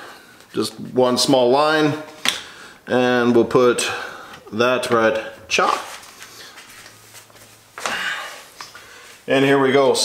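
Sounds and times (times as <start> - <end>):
scuffing handling noise: 4.9 - 9.6.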